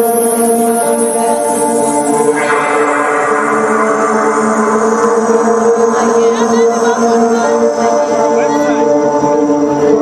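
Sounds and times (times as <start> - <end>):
layered synthesizer tones: 0.0 - 10.0.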